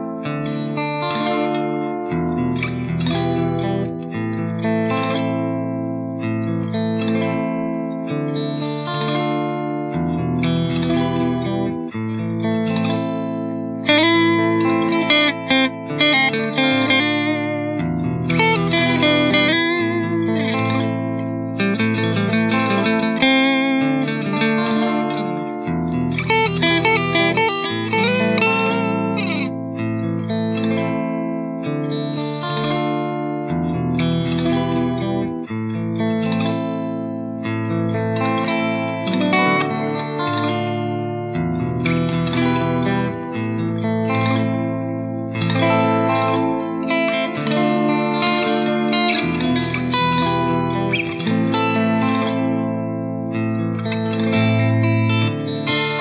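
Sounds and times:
clean electric guitar with reverb: 0.0 - 56.0.

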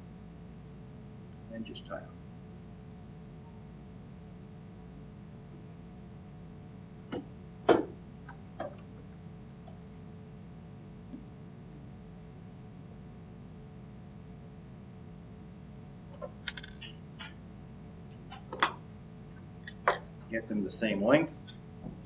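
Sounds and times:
low room hum: 0.0 - 22.0
hands handling thread clicks: 16.5 - 16.9.

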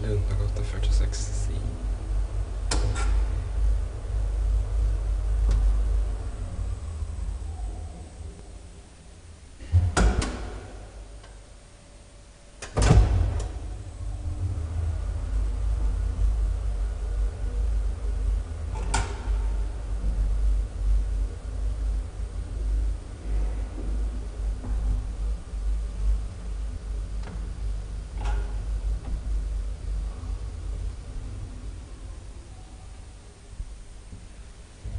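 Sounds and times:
elevator car rumbling: 0.0 - 34.9
elevator doors shutting: 1.6 - 34.9.

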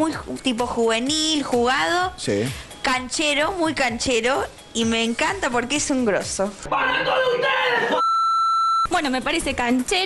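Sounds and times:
censor bleep: 8.0 - 8.9.

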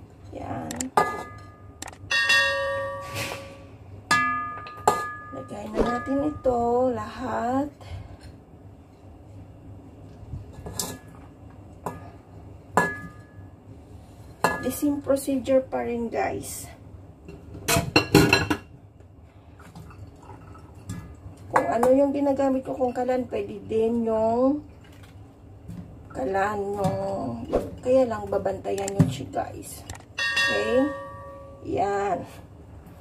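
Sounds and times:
kitchenware clattering: 0.9 - 6.5, 17.3 - 18.7, 30.2 - 31.6
metal pot ringing: 1.0 - 6.7, 30.2 - 31.8.

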